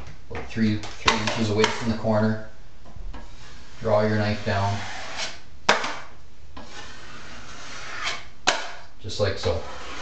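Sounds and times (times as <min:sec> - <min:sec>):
drywall knife scraping: 0:01.0 - 0:02.0, 0:03.2 - 0:10.0.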